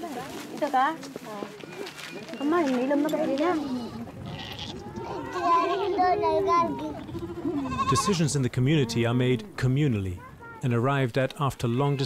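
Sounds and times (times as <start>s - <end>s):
woman's voice: 0.0s - 1.6s, 2.3s - 4.1s
goats bleating: 3.2s - 9.0s.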